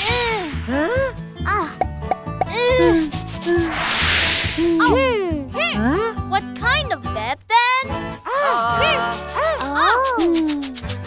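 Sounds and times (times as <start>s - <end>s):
children's music with steady beat: 1.4s - 3.7s.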